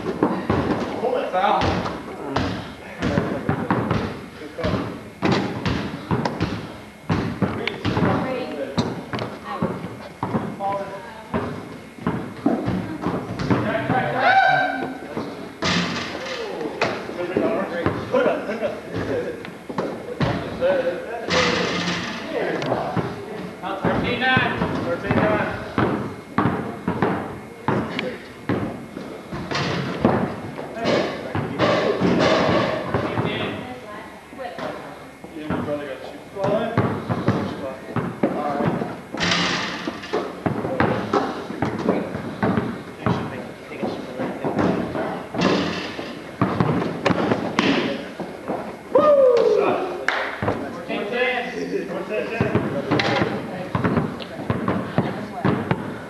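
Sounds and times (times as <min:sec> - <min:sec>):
basketball bouncing on court: 0:00.0 - 0:14.2, 0:17.8 - 0:18.1, 0:19.8 - 0:20.6, 0:23.8 - 0:33.6, 0:36.5 - 0:47.9, 0:52.4 - 0:56.0
players' indistinct voices: 0:00.0 - 0:56.0.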